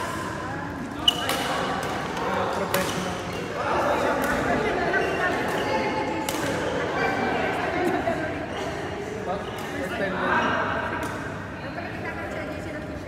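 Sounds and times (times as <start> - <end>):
background chatter: 0.0 - 13.0
badminton rackets hitting shuttlecock: 1.0 - 3.4.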